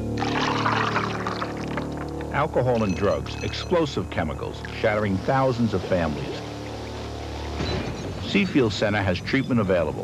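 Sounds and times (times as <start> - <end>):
low background music: 0.0 - 10.0
drink poured over ice: 0.1 - 2.2.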